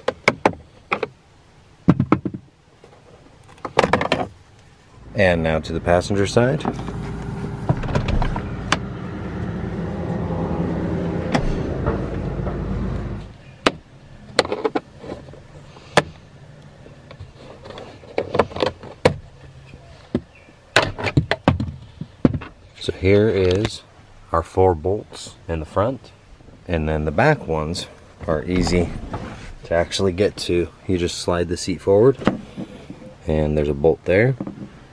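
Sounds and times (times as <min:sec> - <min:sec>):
low hum: 0:04.7 - 0:13.6, 0:27.0 - 0:29.9.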